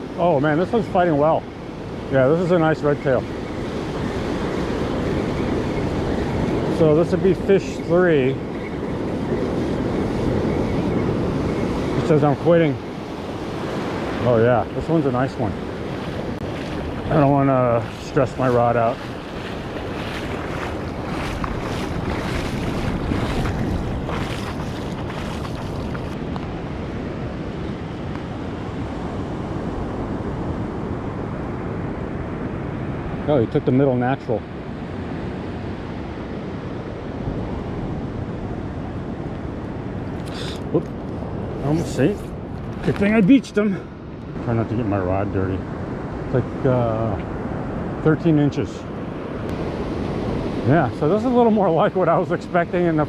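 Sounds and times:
ocean surf breaking: 0:00.0 - 0:33.4
wind on microphone: 0:03.0 - 0:33.4.

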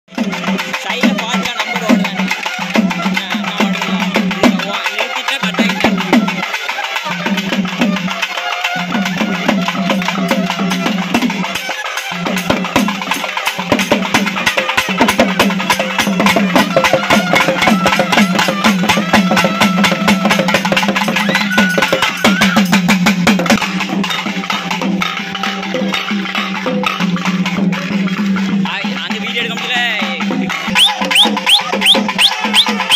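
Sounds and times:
barrel drums played with sticks: 0:00.1 - 0:32.9
high wavering tone: 0:30.7 - 0:32.9.

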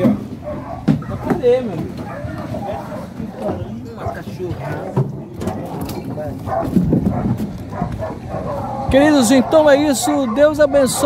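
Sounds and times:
dogs fighting and barking: 0:00.0 - 0:11.0
people's voices: 0:00.0 - 0:11.0.

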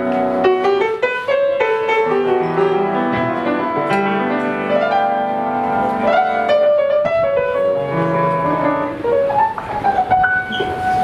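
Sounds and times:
slow keyboard playing: 0:00.0 - 0:11.0.

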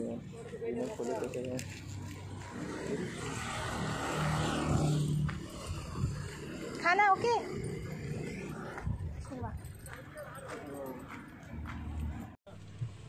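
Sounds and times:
road vehicle passing: 0:00.0 - 0:13.0.

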